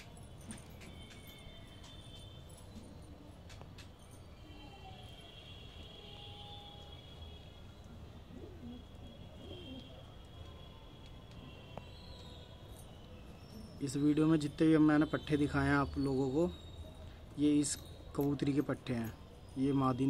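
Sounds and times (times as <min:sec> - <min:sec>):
pigeons cooing: 0:08.0 - 0:10.0.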